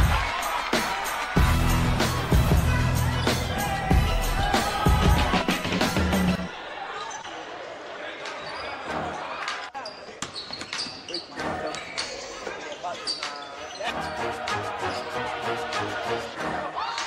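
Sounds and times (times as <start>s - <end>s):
background music: 0.0s - 6.7s, 13.4s - 17.0s
voices calling out in a hall: 2.6s - 17.0s
sneakers squeaking: 7.0s - 7.5s, 8.2s - 14.2s.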